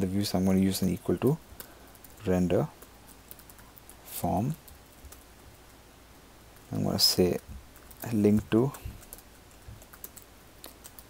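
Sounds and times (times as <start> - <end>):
typing on computer keyboard: 2.8 - 4.0, 7.7 - 11.0.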